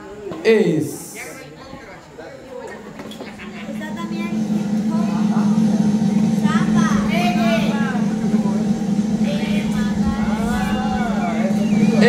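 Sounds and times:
steady low rumble: 3.2 - 12.0
voices calling out: 3.2 - 12.0.

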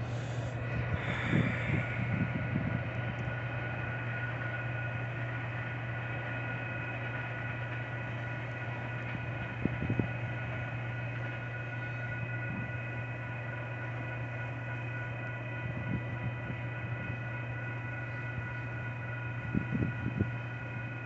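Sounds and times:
distant diesel locomotives idling: 0.0 - 21.0
high-pitched whine tones: 0.0 - 21.0.

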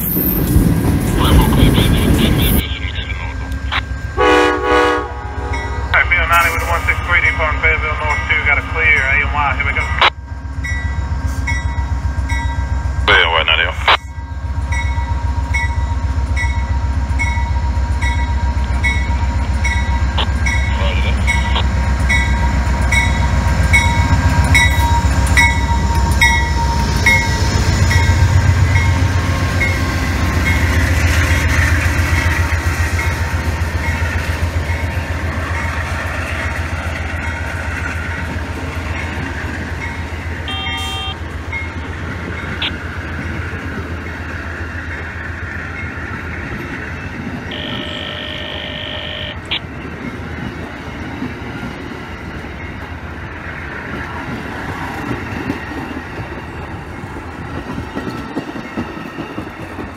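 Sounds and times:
passenger cars rolling by: 0.0 - 3.7
diesel locomotive engine rumbling: 0.0 - 59.9
locomotive bell ringing: 2.7 - 30.9, 37.1 - 42.8, 47.4 - 50.4.

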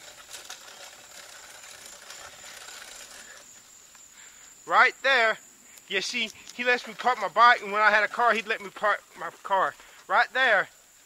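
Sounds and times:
soft even hiss: 1.3 - 11.0.

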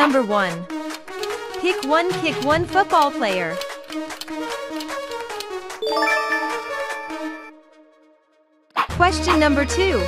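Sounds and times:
background music: 0.0 - 10.0
chime ringing: 5.8 - 7.5.

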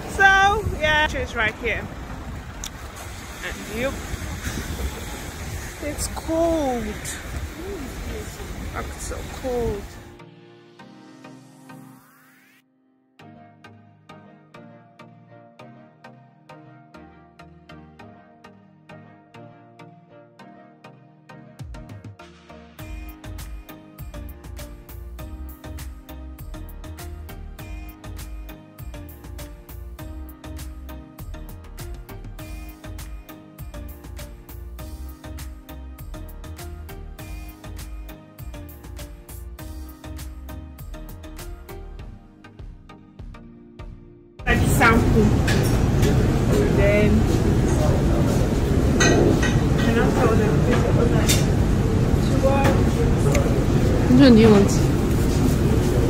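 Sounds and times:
low rumble: 0.0 - 6.2
deep bass line: 0.0 - 10.2, 22.8 - 49.0.

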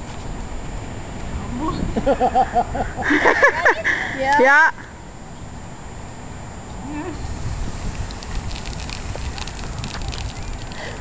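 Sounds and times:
low uneven rumbling: 4.9 - 11.0.

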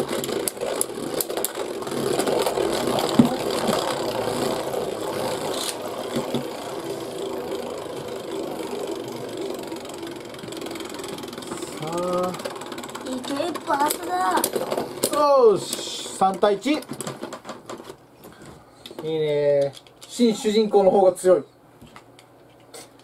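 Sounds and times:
spinning tops whirring: 0.0 - 16.9.

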